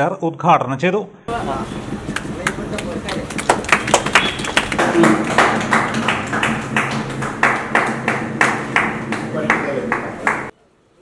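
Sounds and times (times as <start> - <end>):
people clapping: 2.0 - 10.5.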